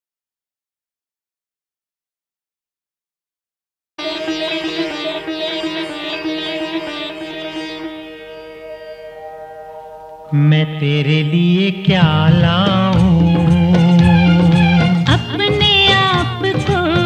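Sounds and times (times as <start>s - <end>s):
instrumental film song: 4.0s - 17.0s.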